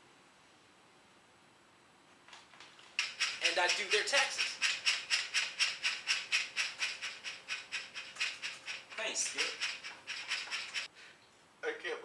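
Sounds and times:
shaker rattling: 0:02.6 - 0:10.9.

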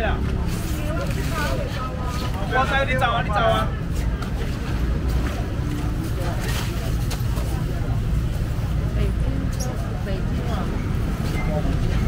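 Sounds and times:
indistinct crowd voices: 0:00.0 - 0:12.0.

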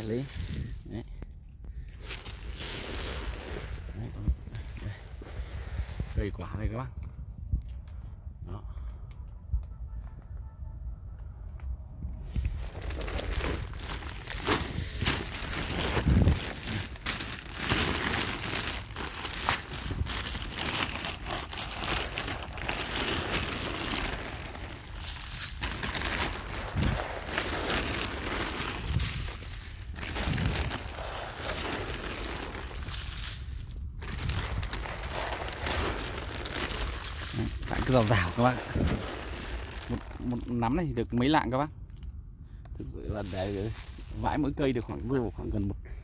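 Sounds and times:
granules landing on leaves: 0:12.4 - 0:40.6, 0:43.1 - 0:44.3.

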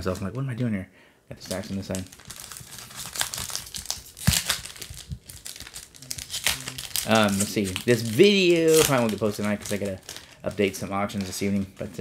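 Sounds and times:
foil wrapper crinkling and tearing: 0:01.5 - 0:12.0.

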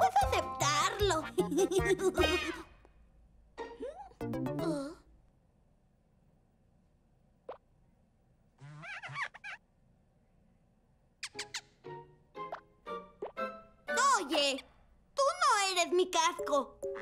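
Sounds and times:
warbling cartoon voice: 0:01.1 - 0:02.7, 0:03.8 - 0:05.1, 0:08.6 - 0:09.6.

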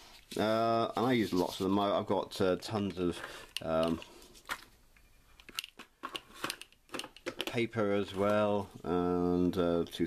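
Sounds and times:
plastic box clicks: 0:05.4 - 0:07.6.

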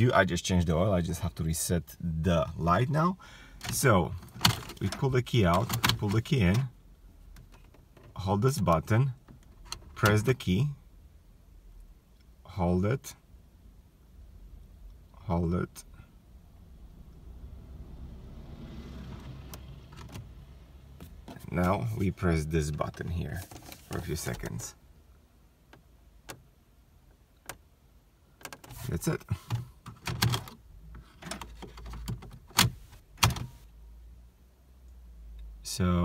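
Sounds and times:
low car hum: 0:00.0 - 0:36.0
car key clicks and rattles: 0:03.6 - 0:06.7, 0:07.3 - 0:10.4, 0:19.5 - 0:20.4, 0:28.4 - 0:33.6.

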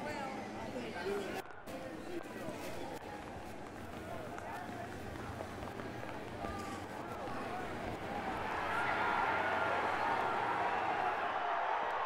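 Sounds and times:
faint voices calling out: 0:00.0 - 0:11.5
stadium background noise: 0:00.0 - 0:12.0.

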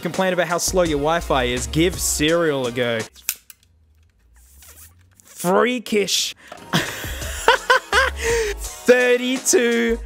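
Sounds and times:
handling of small device: 0:03.1 - 0:05.4.

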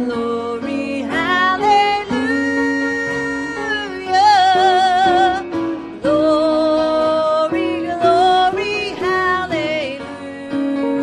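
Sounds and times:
musical accompaniment: 0:00.0 - 0:11.0
woman singing into a microphone: 0:00.0 - 0:11.0.

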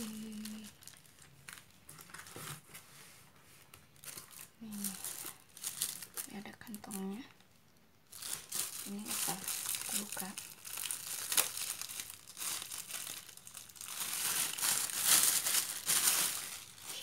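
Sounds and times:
plastic bag crinkling: 0:00.0 - 0:02.7, 0:03.8 - 0:17.0.

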